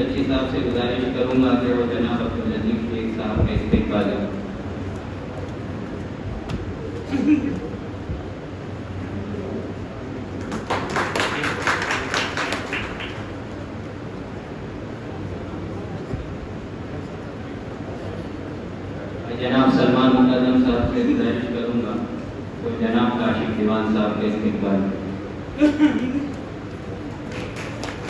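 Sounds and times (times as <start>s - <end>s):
man speaking into a microphone: 0.0s - 4.4s, 19.2s - 25.1s
audience clapping: 10.3s - 13.7s, 26.7s - 28.0s.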